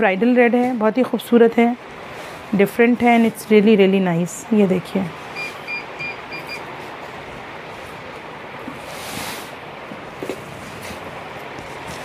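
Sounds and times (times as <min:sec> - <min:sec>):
high electronic beeps: 0:05.4 - 0:06.7
heavy fabric rustling: 0:06.8 - 0:12.0.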